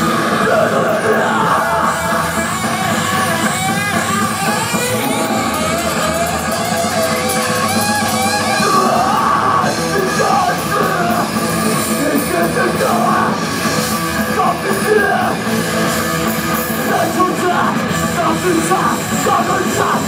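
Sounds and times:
bass guitar: 0.0s - 20.0s
distorted electric guitar: 0.0s - 20.0s.

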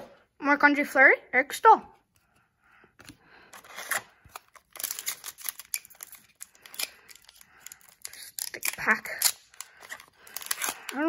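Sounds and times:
foil wrapper crinkling and tearing: 3.6s - 11.0s.

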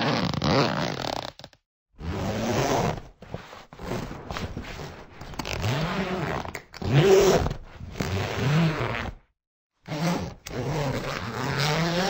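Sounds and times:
zipper being pulled: 0.0s - 9.2s, 9.9s - 12.0s.

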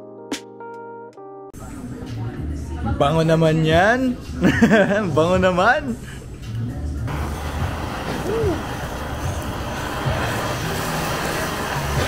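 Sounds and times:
blowtorch flame hissing: 7.1s - 12.0s
burger patty searing: 7.1s - 12.0s.

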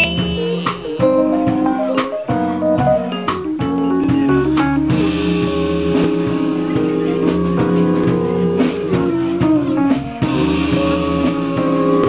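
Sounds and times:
bass line: 0.0s - 12.0s
guitar melody: 0.0s - 12.0s.

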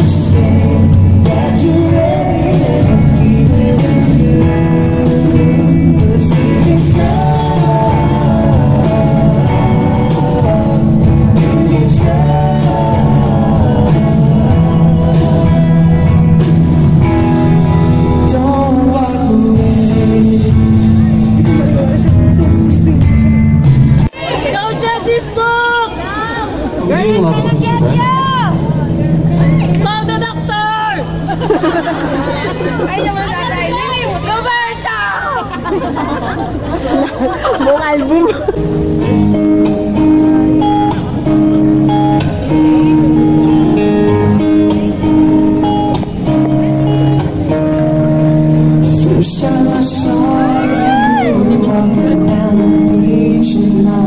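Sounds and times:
man singing: 0.0s - 23.5s, 48.6s - 54.0s
bass guitar: 0.0s - 24.5s, 26.0s - 54.0s
electric guitar: 0.0s - 25.1s, 26.0s - 54.0s
live rock band playing: 0.0s - 25.6s, 26.5s - 54.0s.

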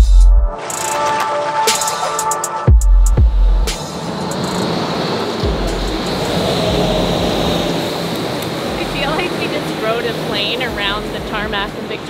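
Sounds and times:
music with heavy bass hits: 0.0s - 4.6s, 5.4s - 7.7s
steady rushing noise: 3.1s - 12.0s
low hum: 3.2s - 9.6s.

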